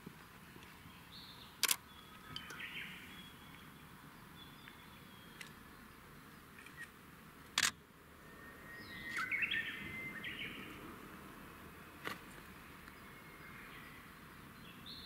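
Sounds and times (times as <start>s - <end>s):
birds chirping: 0.1s - 15.0s
sharp click: 1.6s - 1.8s, 7.5s - 7.8s.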